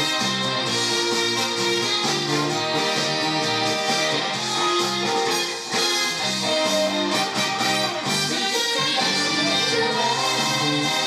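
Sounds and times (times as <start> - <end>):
instrumental band music: 0.0 - 11.0.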